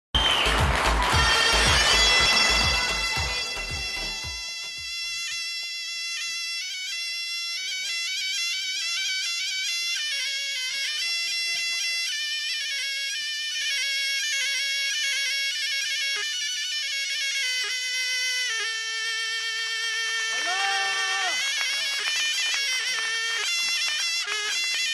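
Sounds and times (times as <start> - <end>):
heavy drum beats: 0.2 - 4.5
bagpipe reedy tones: 0.2 - 24.9
shawm long steady note: 0.3 - 6.9.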